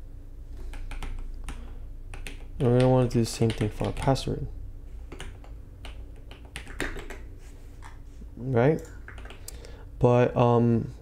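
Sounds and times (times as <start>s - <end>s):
computer keyboard keystrokes: 0.7s - 4.2s, 5.1s - 8.0s, 9.0s - 9.6s.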